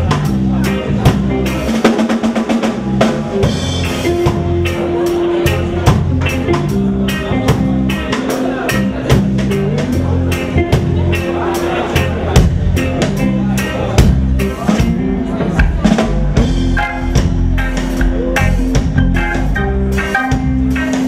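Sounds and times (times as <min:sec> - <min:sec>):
live reggae band playing: 0:00.0 - 0:21.0.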